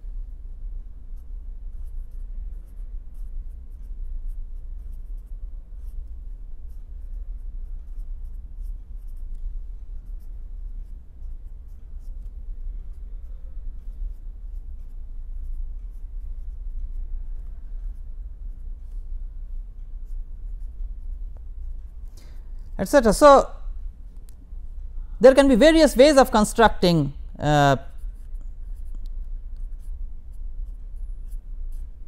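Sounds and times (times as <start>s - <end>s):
marker writing on paper: 1.2s - 19.0s, 20.0s - 23.4s, 27.8s - 32.0s.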